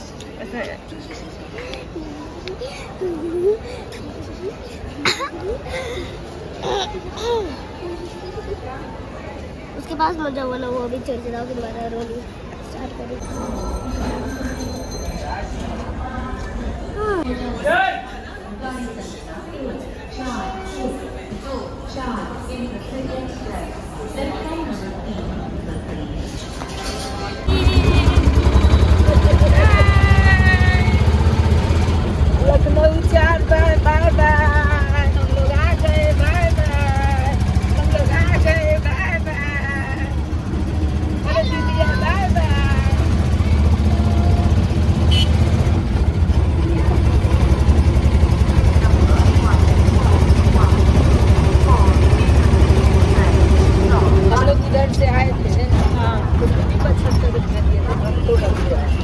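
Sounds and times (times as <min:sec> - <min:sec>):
auto-rickshaw engine droning: 0:27.4 - 0:59.0
high-pitched voices: 0:27.5 - 0:31.2.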